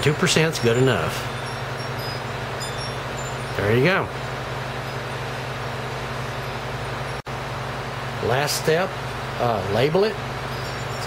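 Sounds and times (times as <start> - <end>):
room tone hum and hiss: 0.0 - 11.0.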